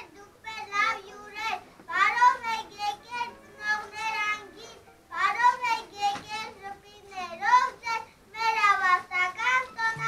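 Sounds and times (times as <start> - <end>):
child singing: 0.0 - 10.0.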